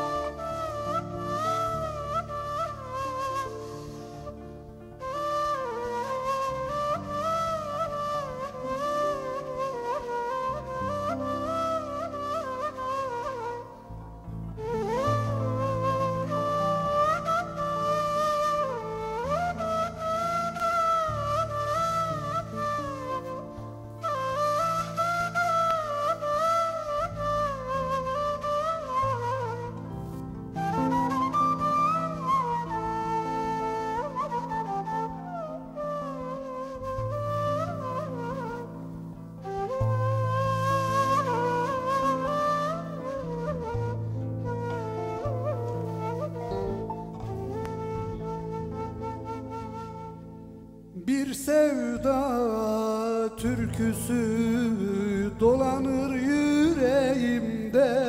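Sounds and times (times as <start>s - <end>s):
low held accompaniment notes: 0.0s - 50.9s
end-blown flute melody: 0.0s - 58.0s.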